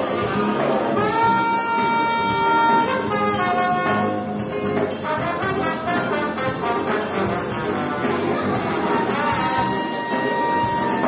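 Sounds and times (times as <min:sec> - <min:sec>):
bass: 0:00.0 - 0:11.0
drums: 0:00.0 - 0:11.0
horn section playing: 0:00.0 - 0:11.0.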